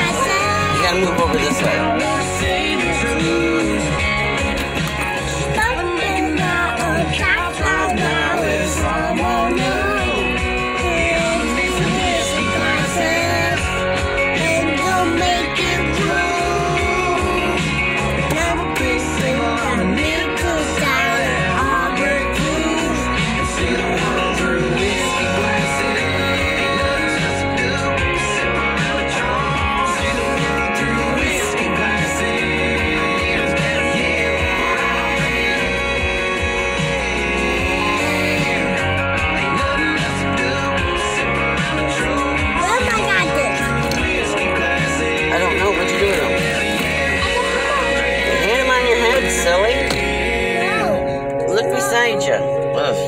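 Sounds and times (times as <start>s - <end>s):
person singing: 0.0s - 51.4s
guitar song on car radio: 0.0s - 53.0s.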